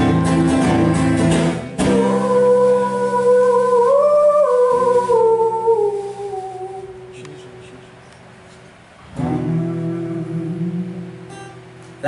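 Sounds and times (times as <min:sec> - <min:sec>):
acoustic guitar chord ringing: 0:00.0 - 0:07.6, 0:09.0 - 0:12.0.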